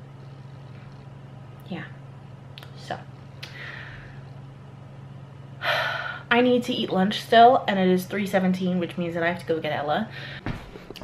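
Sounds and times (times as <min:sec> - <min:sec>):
low steady hum: 0:00.0 - 0:11.0
woman speaking: 0:01.6 - 0:02.0, 0:02.6 - 0:03.2, 0:06.3 - 0:10.1.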